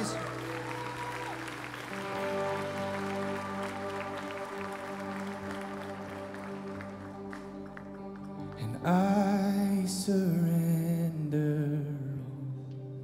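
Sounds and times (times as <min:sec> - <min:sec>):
congregation clapping: 0:00.0 - 0:09.4
band playing soft chords: 0:00.0 - 0:13.0.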